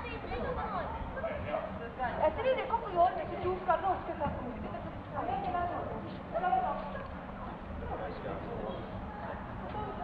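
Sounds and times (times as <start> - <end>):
steady background hum: 0.0 - 10.0.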